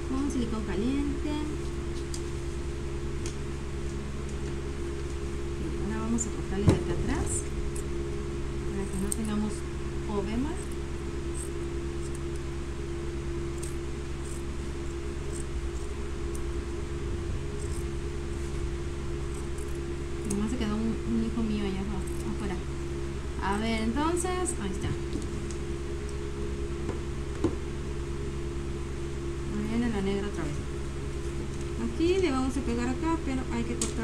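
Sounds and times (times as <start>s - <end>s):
electric fan humming: 0.0s - 34.0s.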